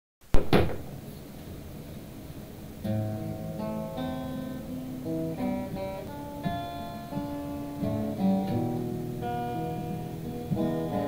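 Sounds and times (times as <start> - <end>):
low room noise: 0.2 - 11.0.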